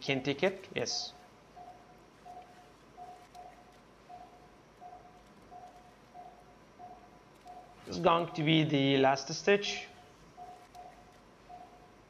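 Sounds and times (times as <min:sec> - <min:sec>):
patient monitor beeping: 0:00.0 - 0:12.0.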